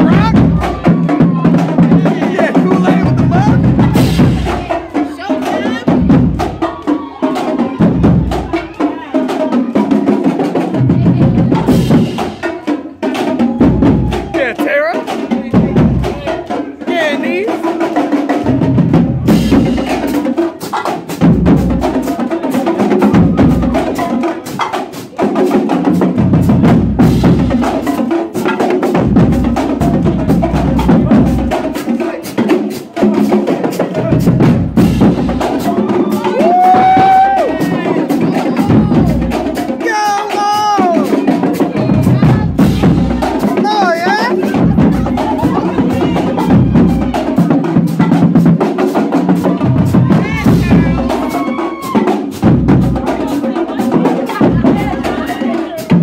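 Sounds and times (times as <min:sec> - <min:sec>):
bass drums thumping: 0:00.0 - 0:06.8, 0:13.4 - 0:16.4, 0:26.0 - 0:31.7, 0:34.0 - 0:48.6, 0:49.2 - 0:53.2, 0:54.4 - 0:56.0
voices shouting: 0:00.0 - 0:17.6, 0:35.4 - 0:48.3, 0:49.3 - 0:56.0.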